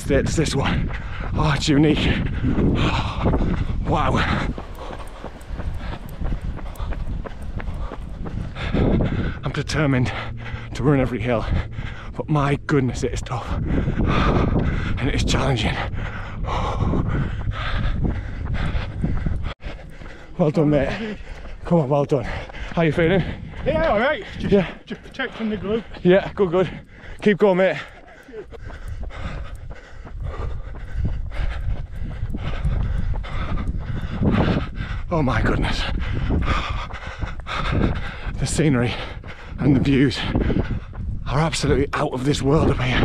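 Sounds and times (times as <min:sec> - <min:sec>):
runner breathing hard: 0:00.0 - 0:43.0
wind buffeting microphone: 0:00.0 - 0:43.0.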